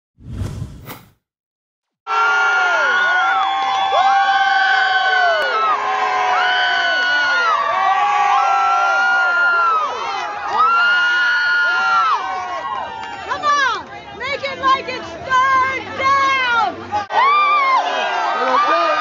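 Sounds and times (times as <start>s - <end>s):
crowd cheering and whooping: 2.1s - 13.4s, 16.9s - 19.0s.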